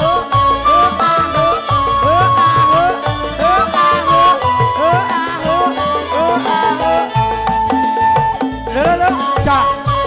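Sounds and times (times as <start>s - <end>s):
bamboo flute long high notes: 0.0s - 10.0s
electronic keyboard: 0.0s - 10.0s.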